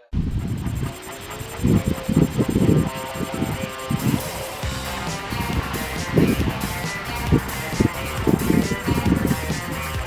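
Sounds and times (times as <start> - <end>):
repeated low beats: 0.0 - 10.0
rising tone: 0.1 - 9.3
background music: 2.6 - 10.0.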